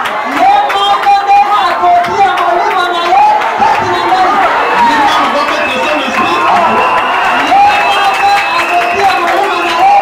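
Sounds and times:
crowd calling out and cheering: 0.0 - 10.0
scattered clapping: 0.0 - 10.0.

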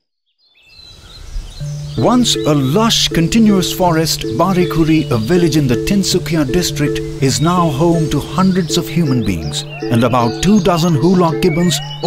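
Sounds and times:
high bird chirps: 0.5 - 12.0
low steady music note: 1.6 - 12.0.

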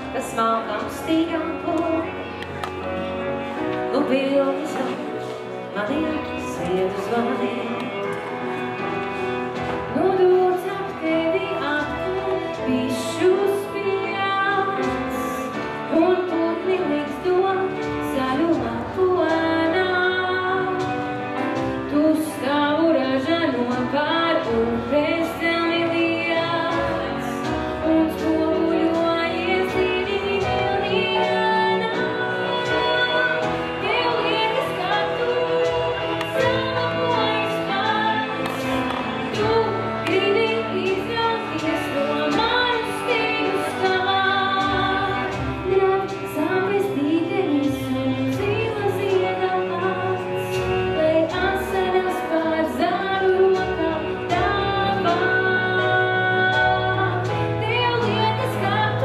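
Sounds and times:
woman singing into a microphone: 0.0 - 2.9, 3.5 - 8.4, 9.6 - 59.0
keyboard: 0.0 - 59.0.

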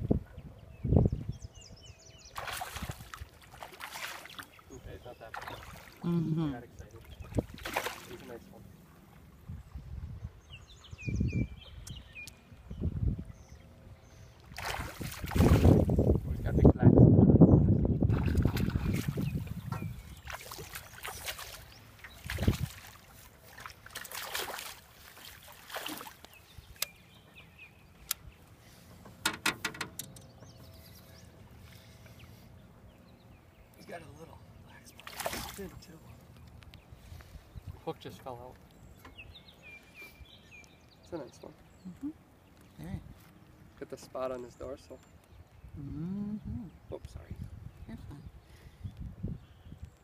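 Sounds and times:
fish splashing at surface: 7.5 - 8.2, 35.0 - 35.6
bird chirping: 10.1 - 14.4, 26.2 - 50.0.

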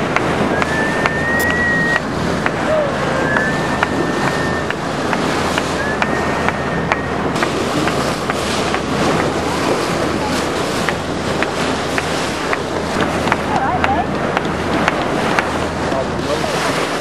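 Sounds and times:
water rushing and splashing: 0.0 - 17.0
wind on microphone: 0.0 - 17.0
thin steady whistles: 0.4 - 2.1, 3.1 - 4.9, 5.7 - 7.2.

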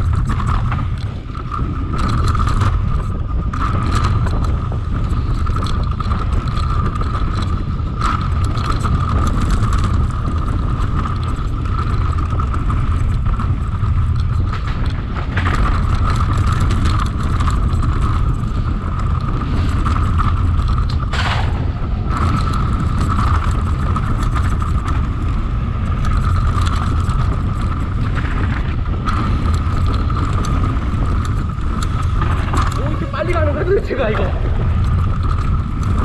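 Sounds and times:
bike rattling over bumps: 0.0 - 36.0
tyres over dirt and stones: 0.0 - 36.0
wind rumbling on microphone: 0.0 - 36.0.

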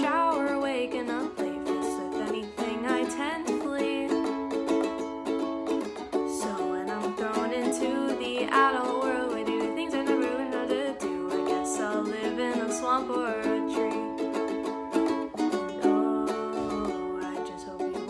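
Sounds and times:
ukulele strumming: 0.0 - 18.0
woman singing: 0.0 - 18.0.

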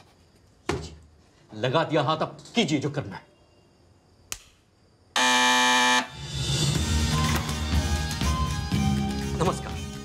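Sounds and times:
loud electric buzzer: 5.2 - 6.4
background music: 5.7 - 10.0.

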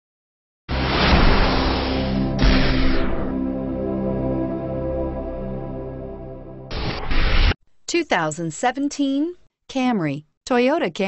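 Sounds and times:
loud rushing whoosh: 0.7 - 3.8
steady low drone: 0.7 - 7.0.

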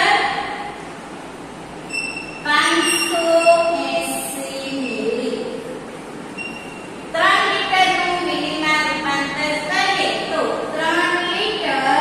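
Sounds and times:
steady background noise: 0.0 - 12.0
woman's voice: 2.5 - 5.6, 7.2 - 12.0.

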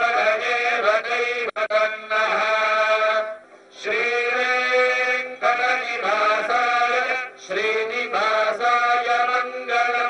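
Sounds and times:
devotional chanting: 0.0 - 10.0.

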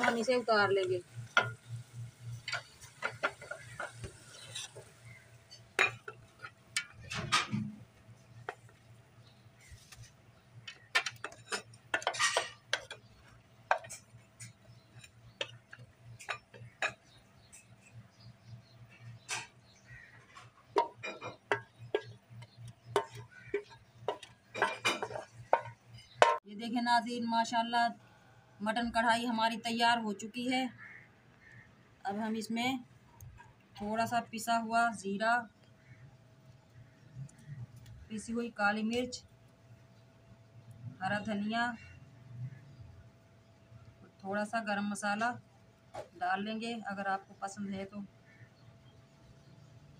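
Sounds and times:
ladle scraping metal pot: 2.3 - 7.6, 10.9 - 13.0.

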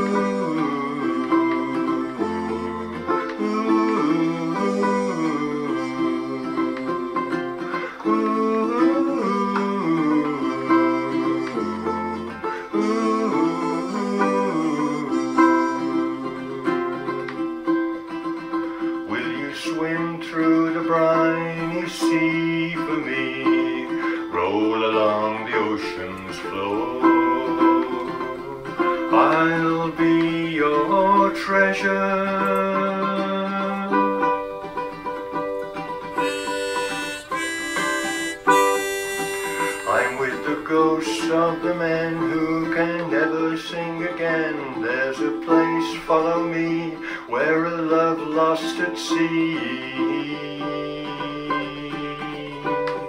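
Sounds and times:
ukulele chords: 0.0 - 53.0.

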